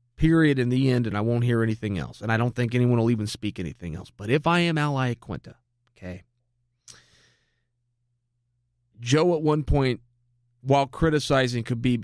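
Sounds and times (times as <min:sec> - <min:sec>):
man breathing out: 0:06.8 - 0:07.7.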